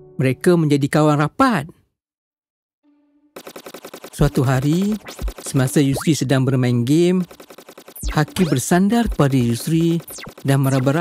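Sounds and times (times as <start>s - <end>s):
rapid automatic gunfire: 3.4s - 6.0s, 7.0s - 11.0s.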